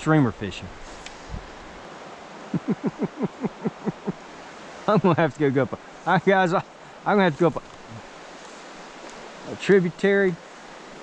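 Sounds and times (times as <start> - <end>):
river water flowing: 0.0 - 11.0.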